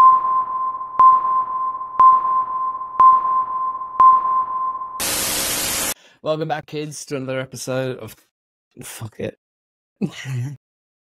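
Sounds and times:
sonar-like electronic pings: 0.0s - 5.0s
loud white-noise static: 5.0s - 6.0s.

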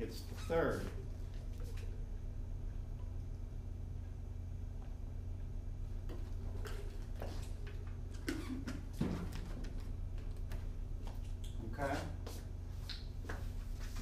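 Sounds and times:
steady low hum: 0.0s - 14.0s.

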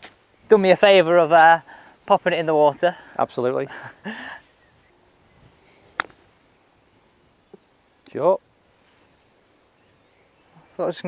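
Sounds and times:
golf club striking ball: 5.9s - 6.2s.

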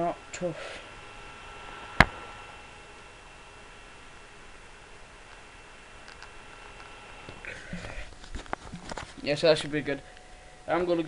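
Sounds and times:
faint high whine: 0.0s - 11.0s
steady low hiss: 0.0s - 11.0s.

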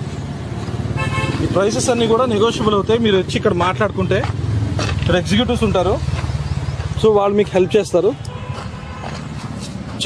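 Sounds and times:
faint footsteps: 0.0s - 1.6s, 6.0s - 10.0s
outdoor background noise: 0.0s - 10.0s.

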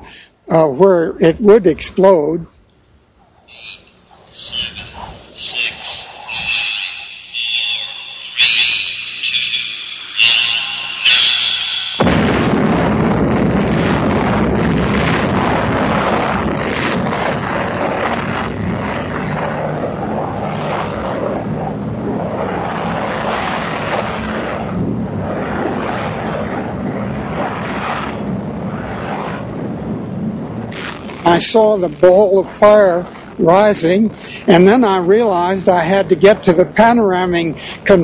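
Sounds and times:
sudden bang: 12.0s - 31.3s
bomb blast rumble: 12.0s - 38.0s.

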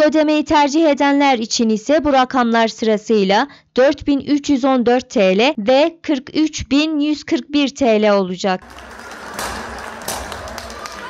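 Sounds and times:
noisy crowd: 8.6s - 11.0s
sharp cracks: 8.6s - 11.0s.

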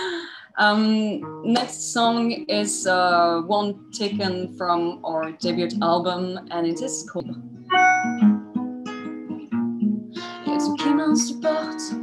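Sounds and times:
acoustic guitar fingerpicked: 1.2s - 12.0s.

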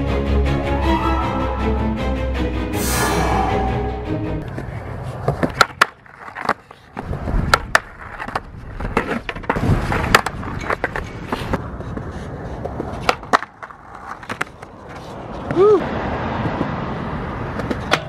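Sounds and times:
skateboard rolling on concrete: 4.4s - 18.0s
skateboard clacking on ledge: 12.6s - 15.0s, 17.5s - 18.0s.

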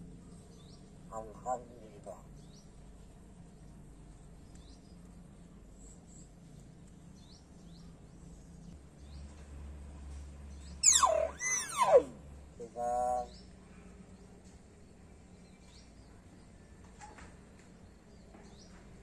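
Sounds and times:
bird swooping whistles: 10.8s - 13.3s
bird short nasal call: 10.8s - 13.4s.

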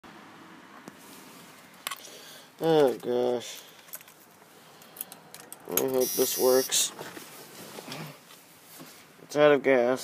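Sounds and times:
truck cab hiss: 6.0s - 6.9s.

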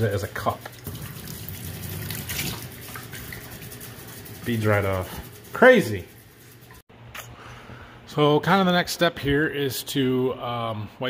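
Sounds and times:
water running from a faucet: 0.0s - 6.8s
water splashing on a towel: 0.7s - 3.9s.

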